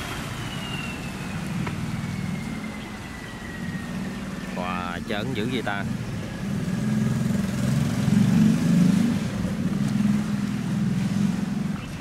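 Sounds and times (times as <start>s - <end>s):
boat engine humming: 0.0s - 12.0s
propeller wash in water: 0.0s - 12.0s.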